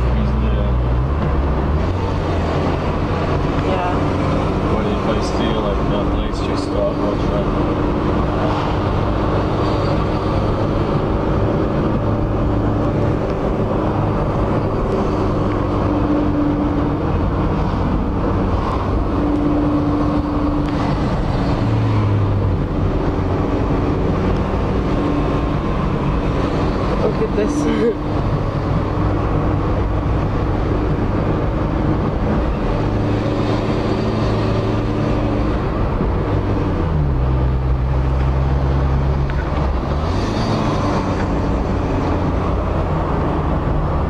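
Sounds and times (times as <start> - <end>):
car engine and tyre drone: 0.0 - 44.0.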